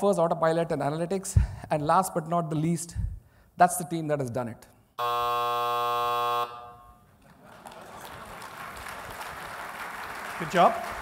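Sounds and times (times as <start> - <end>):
electronic buzzer tone: 5.0 - 7.0
audience applause: 7.2 - 11.0.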